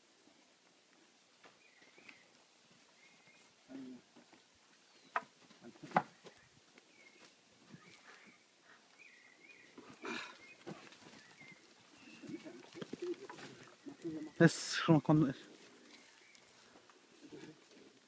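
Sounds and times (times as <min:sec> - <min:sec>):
faint bird chirps: 0:01.6 - 0:04.0, 0:06.1 - 0:14.8.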